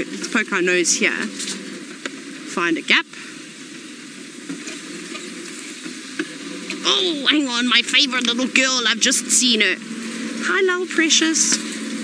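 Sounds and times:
vehicle engine and tyres hissing: 3.1 - 12.0.

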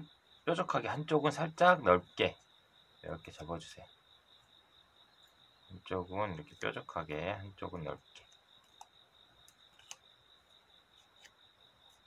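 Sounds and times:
thin paper creasing clicks: 9.7 - 10.0.

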